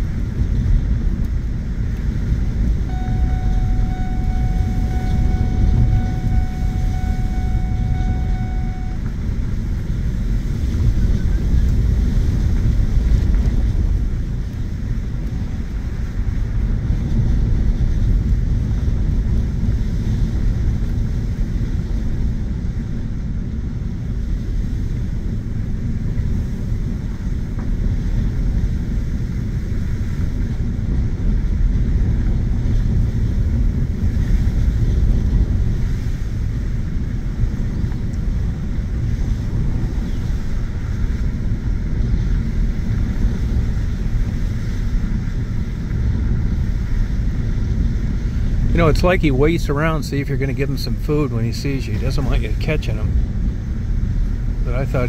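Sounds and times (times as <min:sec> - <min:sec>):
tyre and engine rumble: 0:00.0 - 0:55.0.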